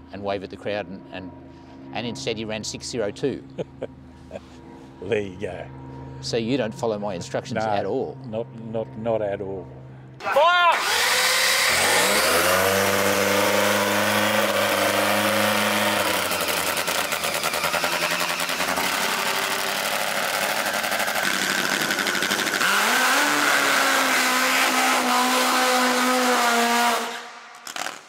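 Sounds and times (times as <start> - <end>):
drag motorcycle engine running: 10.8 - 27.3.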